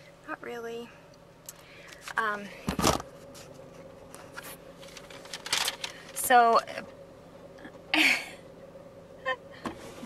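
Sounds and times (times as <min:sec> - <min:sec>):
faint steady hum: 0:00.0 - 0:10.0
woman laughing: 0:07.9 - 0:08.4.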